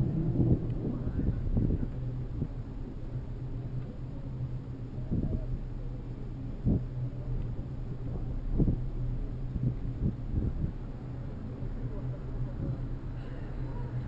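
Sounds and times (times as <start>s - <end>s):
wind on microphone: 0.0s - 3.7s, 4.8s - 5.7s, 6.4s - 14.0s
bicycle tyre and road noise: 0.0s - 14.0s.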